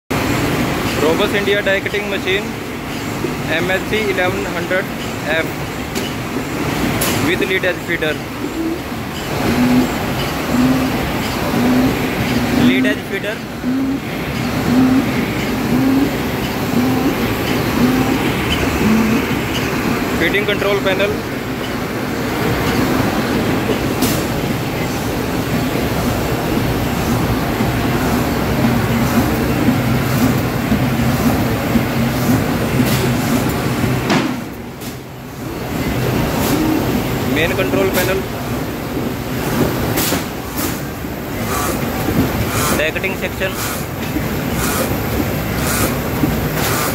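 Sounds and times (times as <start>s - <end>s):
machine rumble and clatter: 0.1s - 46.9s
die-cutting machine din: 7.3s - 21.2s.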